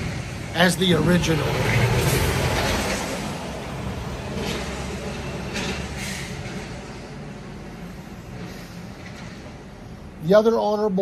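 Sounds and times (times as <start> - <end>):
vehicle engine rumble passing: 0.0 - 11.0.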